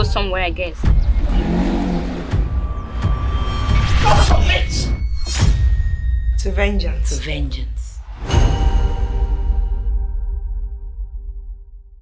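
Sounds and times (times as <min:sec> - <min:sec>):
car engine revving: 0:00.8 - 0:03.4.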